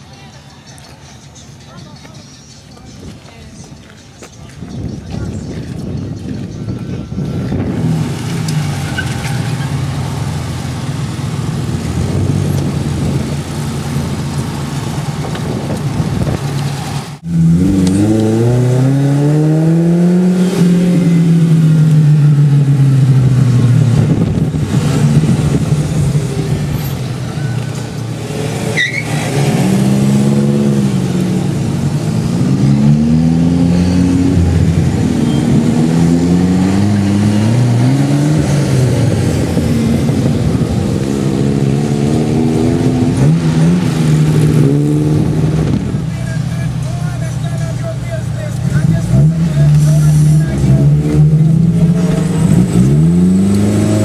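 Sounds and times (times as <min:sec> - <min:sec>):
car engines revving and accelerating: 0:00.0 - 0:54.0.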